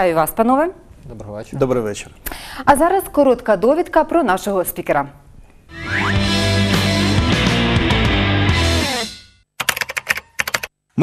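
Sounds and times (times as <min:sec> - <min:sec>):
music: 0:05.7 - 0:09.3
computer keyboard typing clicks: 0:09.6 - 0:10.7.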